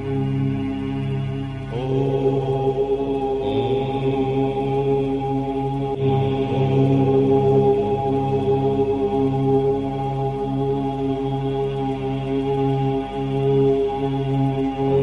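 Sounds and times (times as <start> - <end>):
steady drone: 0.0 - 15.0
voices chanting om: 0.0 - 15.0.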